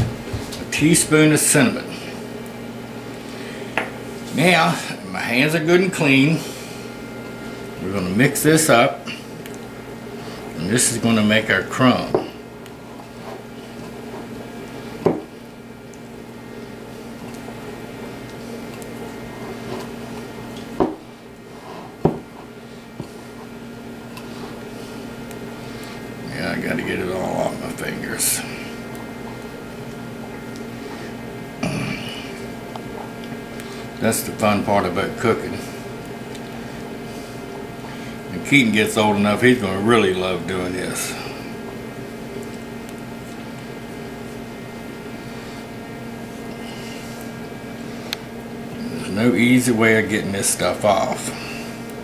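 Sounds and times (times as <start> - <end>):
low room hum: 0.0 - 52.0.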